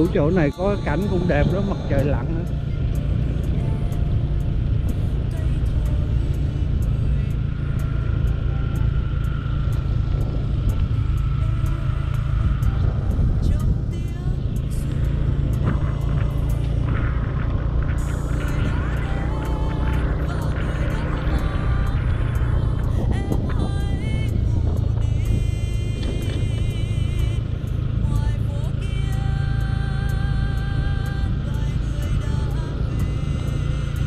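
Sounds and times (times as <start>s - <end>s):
motorbike road noise: 0.0s - 34.0s
wind rush on microphone: 9.7s - 29.6s.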